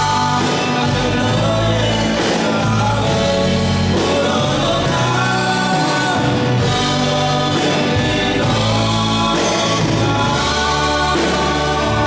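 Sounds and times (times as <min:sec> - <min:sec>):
guitar: 0:00.0 - 0:12.0
steady bass line: 0:00.0 - 0:12.0
woman and man singing: 0:00.0 - 0:12.0.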